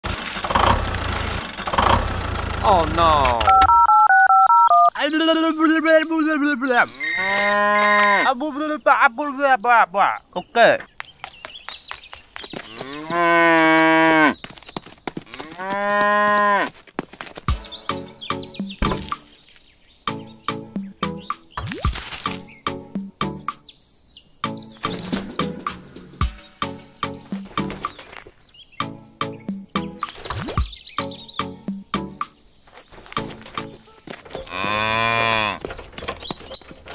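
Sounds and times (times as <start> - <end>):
tractor engine throbbing: 0.0 - 3.7
cow mooing: 6.8 - 8.3, 12.7 - 14.4, 15.4 - 16.7, 34.4 - 35.7
music with regular beat: 17.5 - 19.2, 22.3 - 23.6, 25.4 - 28.0, 28.8 - 32.3.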